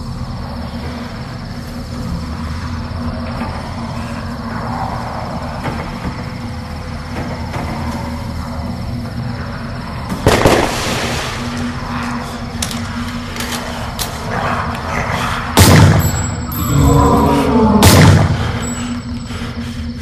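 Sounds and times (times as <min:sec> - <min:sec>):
dark electronic music: 0:11.3 - 0:20.0.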